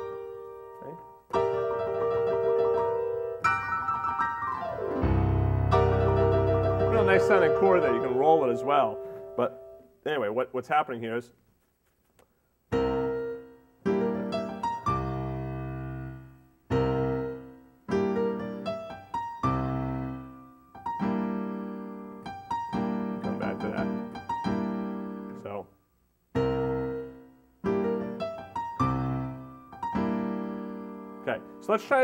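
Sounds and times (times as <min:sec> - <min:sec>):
slow jazz piano chords: 0:00.0 - 0:09.8, 0:12.7 - 0:25.6, 0:26.4 - 0:32.0.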